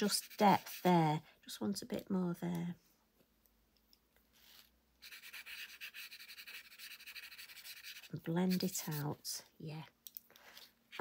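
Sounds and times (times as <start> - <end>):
fingertip rubbing on paper: 0.0 - 0.9, 5.0 - 9.1.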